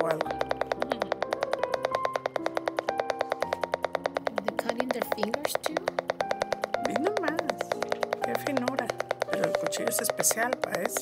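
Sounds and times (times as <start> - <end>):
background music: 0.0 - 11.0
knife tapping on wooden board: 0.0 - 11.0
woman speaking: 4.4 - 5.9.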